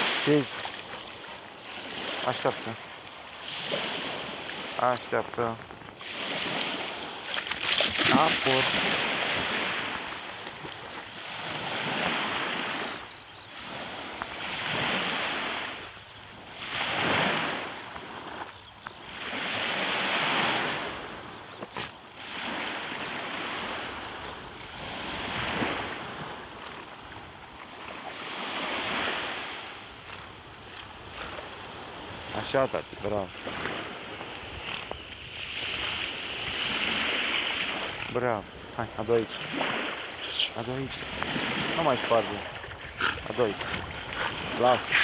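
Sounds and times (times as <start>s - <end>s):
small waves breaking on shore: 0.0s - 45.0s.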